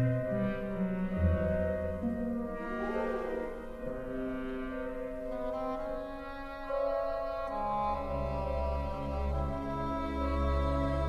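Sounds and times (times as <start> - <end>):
orchestral brass and strings: 0.0 - 11.0.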